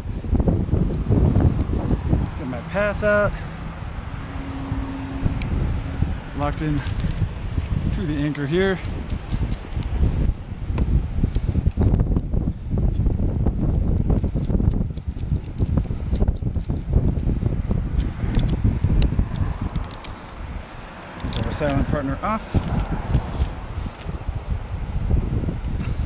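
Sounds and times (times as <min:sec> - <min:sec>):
wind buffeting microphone: 0:00.0 - 0:26.0
metallic clicks of carabiners: 0:00.6 - 0:03.0, 0:06.4 - 0:10.3, 0:13.7 - 0:21.9, 0:22.6 - 0:23.0.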